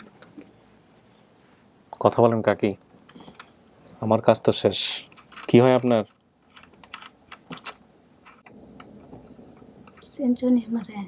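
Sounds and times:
faint irregular clicks and taps: 0:02.8 - 0:04.0, 0:05.1 - 0:11.0.

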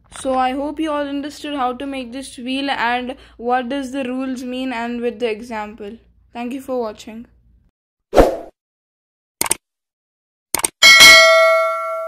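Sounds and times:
notification bell ding: 0:10.8 - 0:12.0.

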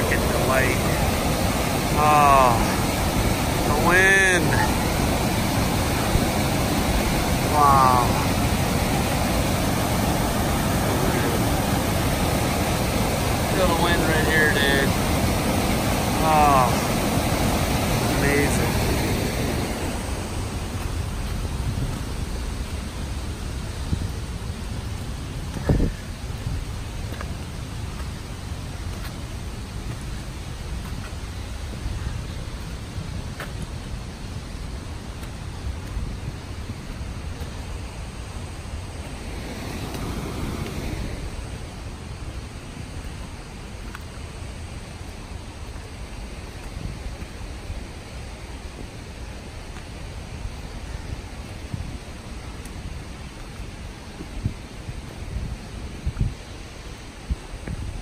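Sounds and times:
water rushing over boulders: 0:00.0 - 0:58.0.

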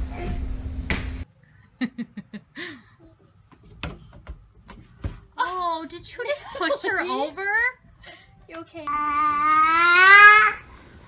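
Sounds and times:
hands slapping hardwood floor: 0:00.9 - 0:01.2.

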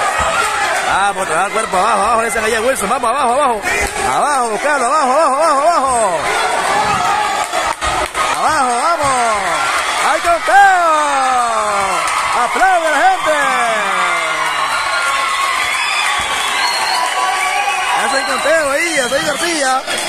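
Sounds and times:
crowd din: 0:00.0 - 0:20.0
spectators shouting and cheering: 0:00.0 - 0:20.0
long falling shouts: 0:04.3 - 0:18.6.

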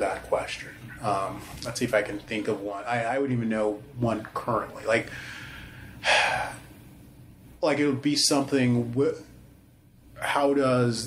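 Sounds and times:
man's sharp intake of breath: 0:05.1 - 0:06.6.

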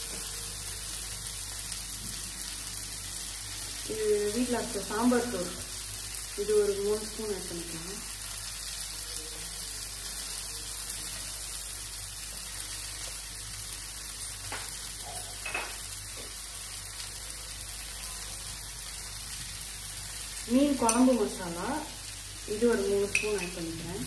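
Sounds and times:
onions sizzling in a frying pan: 0:00.0 - 0:24.0.

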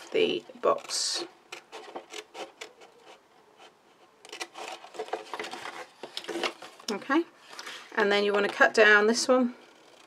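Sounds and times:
card rustling: 0:04.2 - 0:07.9.

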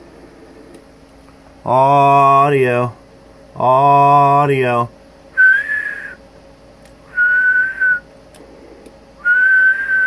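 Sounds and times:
faint steady hum: 0:00.0 - 0:10.0
person whistling one note: 0:05.4 - 0:06.2, 0:07.1 - 0:08.0, 0:09.2 - 0:10.0.

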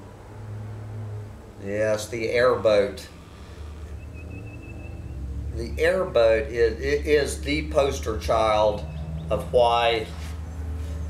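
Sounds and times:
distant airboat engine droning: 0:00.0 - 0:11.0.

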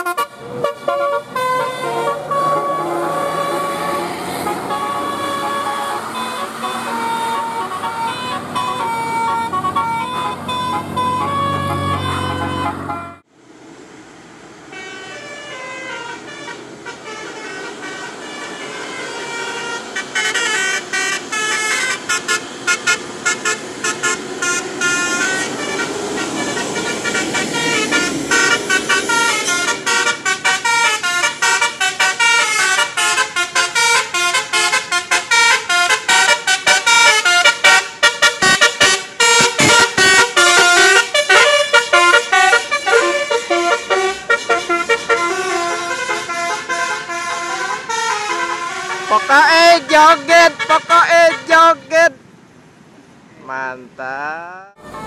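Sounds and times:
bus horn playing melodic notes: 0:00.0 - 0:13.3, 0:14.7 - 0:52.1, 0:54.7 - 0:55.0.

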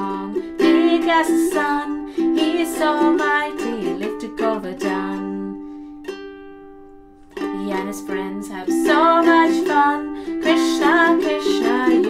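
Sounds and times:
ukulele chord strummed: 0:00.0 - 0:12.0.

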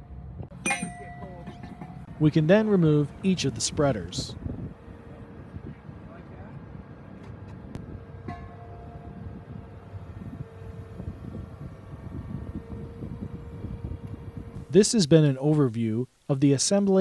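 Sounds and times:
excavator diesel engine rumbling: 0:00.0 - 0:14.7
higher machine tone: 0:00.5 - 0:05.7, 0:07.8 - 0:14.9.

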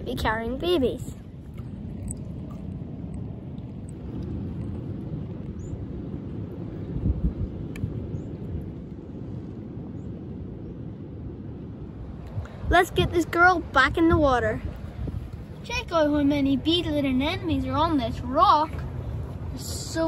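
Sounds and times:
low outdoor rumble: 0:00.0 - 0:20.0.

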